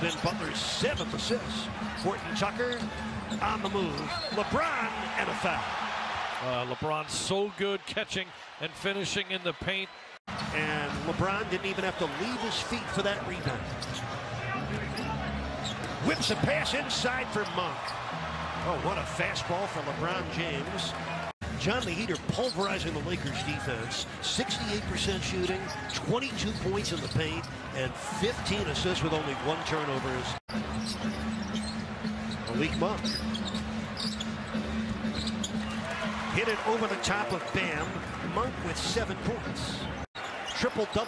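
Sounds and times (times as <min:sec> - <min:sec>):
arena crowd noise: 0:00.0 - 0:30.4, 0:31.4 - 0:41.0
sneakers squeaking on court: 0:00.1 - 0:05.1, 0:11.7 - 0:18.1, 0:24.8 - 0:27.7, 0:30.5 - 0:38.3.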